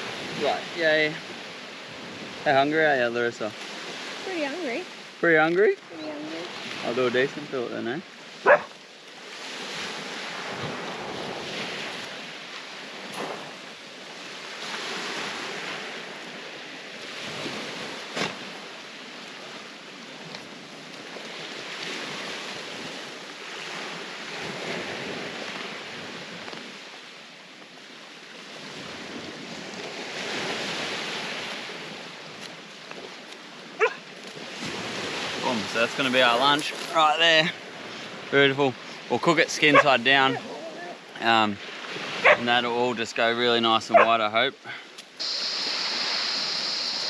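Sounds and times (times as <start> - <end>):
wind on microphone: 0.0 - 2.5, 8.4 - 18.7
small waves washing onto shore: 0.0 - 47.0.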